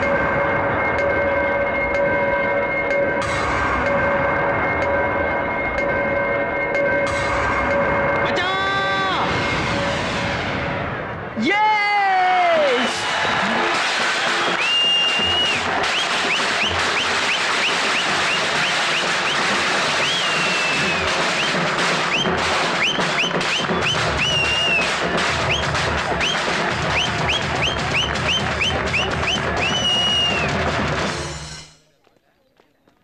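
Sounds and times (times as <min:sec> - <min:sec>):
music with drumbeat: 0:02.9 - 0:05.0, 0:12.7 - 0:31.8
crowd cheering and clapping: 0:11.4 - 0:31.2
sharp whistles: 0:14.2 - 0:30.6.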